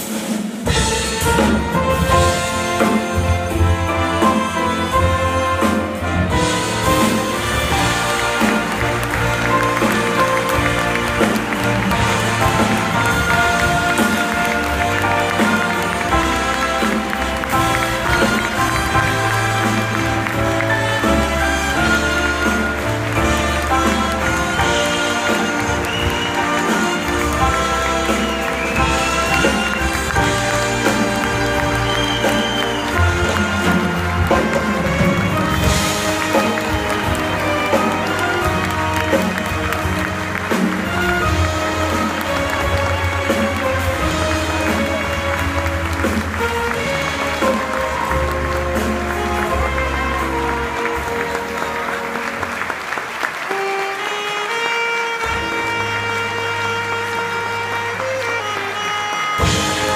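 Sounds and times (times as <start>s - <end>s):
orchestra playing instrumental music: 0.0s - 59.9s
audience applause: 0.8s - 59.9s.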